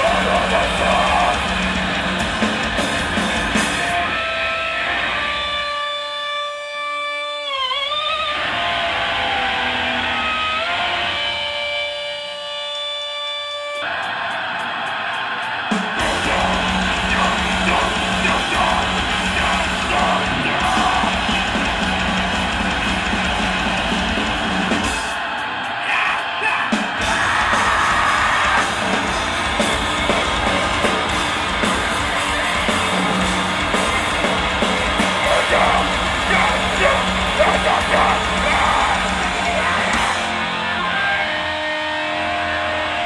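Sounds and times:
metal band with drums and bass: 0.0 - 43.0
electric guitar notes bending: 27.0 - 43.0.

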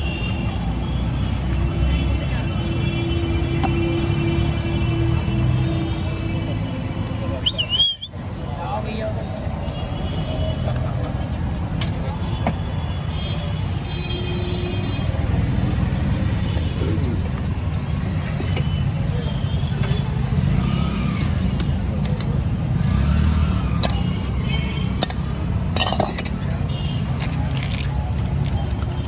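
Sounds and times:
traffic rumbling: 0.0 - 29.0
steel utensils clinking: 25.0 - 26.6.

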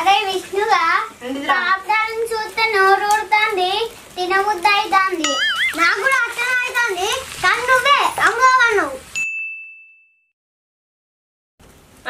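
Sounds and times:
bright ding: 9.2 - 10.3.

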